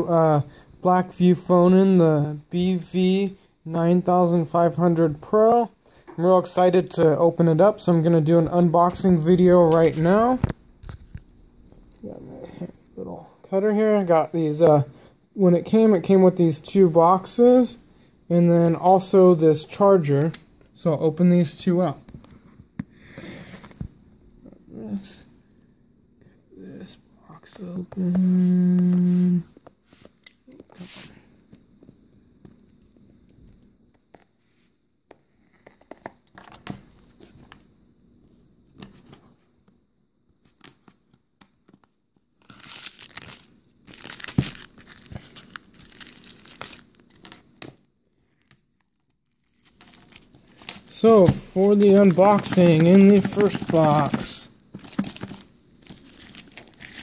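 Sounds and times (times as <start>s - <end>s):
packaging rustle: 41.6s - 57.0s.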